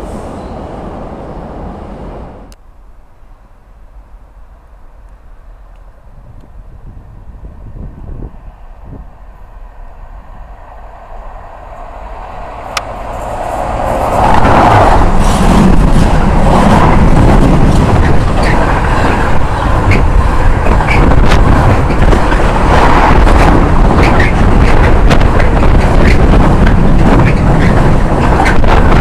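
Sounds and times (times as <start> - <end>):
freight train passing: 0.0 - 29.0.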